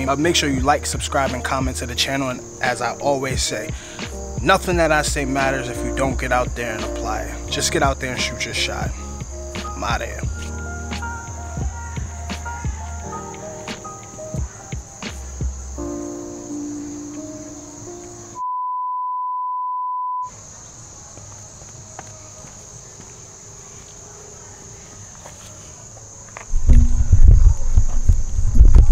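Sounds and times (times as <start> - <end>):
insects chirring: 0.0 - 18.4, 20.2 - 28.9
music: 0.0 - 18.5, 26.5 - 28.9
low rumble on microphone: 26.5 - 28.9.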